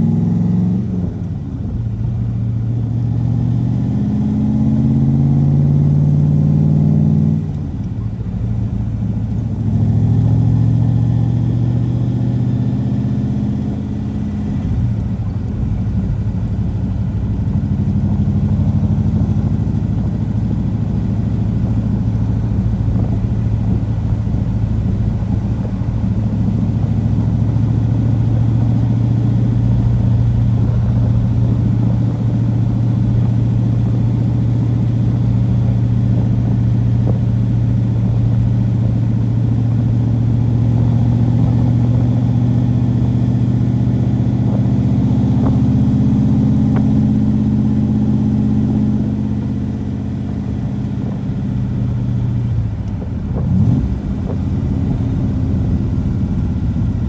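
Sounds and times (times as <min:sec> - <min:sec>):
car engine running: 0:00.0 - 0:57.0.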